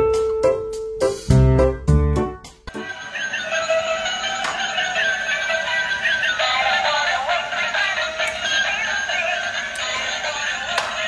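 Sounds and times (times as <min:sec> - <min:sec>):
music with synthesized singing voice: 0:02.7 - 0:11.0.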